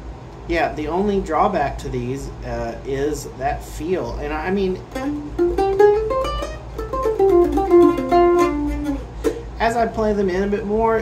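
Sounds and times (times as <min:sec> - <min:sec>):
mandolin picked notes: 0:04.7 - 0:09.7.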